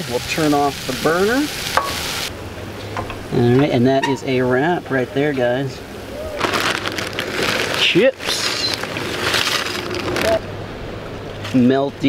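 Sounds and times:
plastic bag rustling: 6.2 - 10.5.

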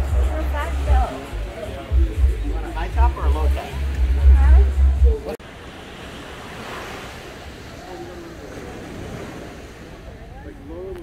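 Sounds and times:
faint distant voices: 0.0 - 11.0
small waves washing on sand: 5.4 - 11.0.

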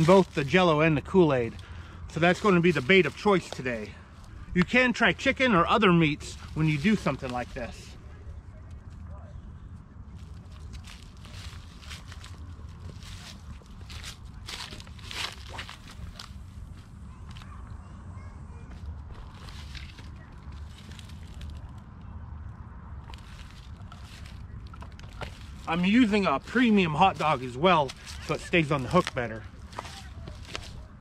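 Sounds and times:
footsteps on dry leaves and stones: 0.0 - 8.0, 10.1 - 17.5, 18.7 - 22.0, 22.9 - 31.0
steady low rumble: 0.0 - 31.0.

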